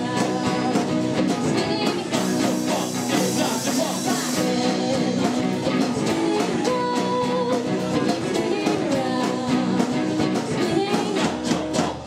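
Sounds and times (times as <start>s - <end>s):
electric and acoustic guitars: 0.0s - 12.0s
steady drum beat: 0.0s - 12.0s.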